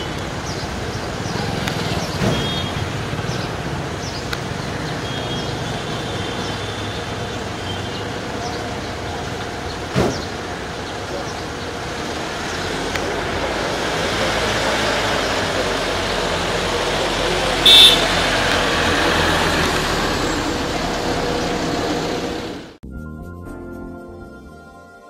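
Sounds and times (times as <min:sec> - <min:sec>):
street traffic noise: 0:00.0 - 0:22.8
ambulance van driving off: 0:06.4 - 0:22.8
high-pitched horn beep: 0:17.6 - 0:18.2.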